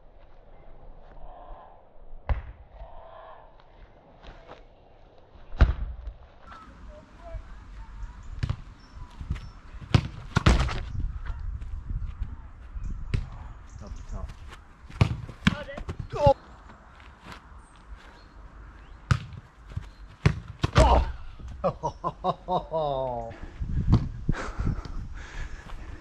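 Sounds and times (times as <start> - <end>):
football kicked and bouncing: 5.6 - 6.2, 8.4 - 10.9, 13.1 - 13.4, 14.9 - 16.4, 19.1 - 21.1.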